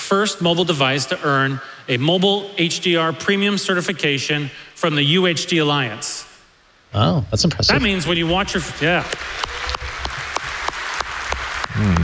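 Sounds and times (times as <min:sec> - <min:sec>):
audience applauding: 0:07.9 - 0:12.0.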